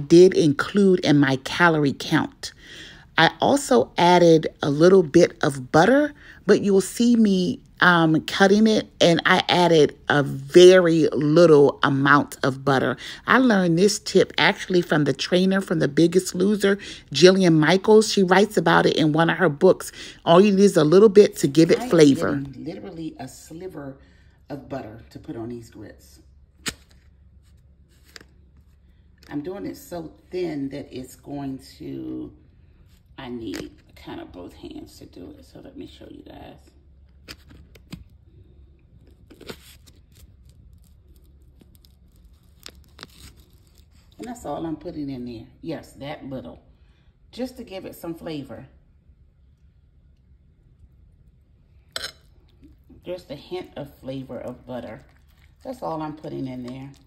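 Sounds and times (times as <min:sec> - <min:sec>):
faint low hum: 0:00.0 - 0:57.0.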